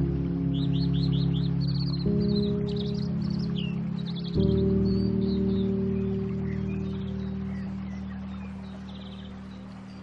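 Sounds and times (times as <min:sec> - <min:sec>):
sustained low chord: 0:00.0 - 0:10.0
bird chirps: 0:00.5 - 0:10.0.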